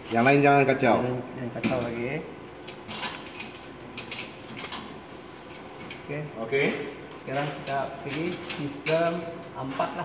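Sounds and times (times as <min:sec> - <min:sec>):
metallic clicks and knocks: 0:07.4 - 0:09.2.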